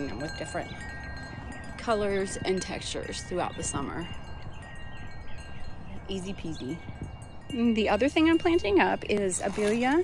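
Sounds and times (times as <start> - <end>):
wind chimes ringing: 0.0 - 10.0.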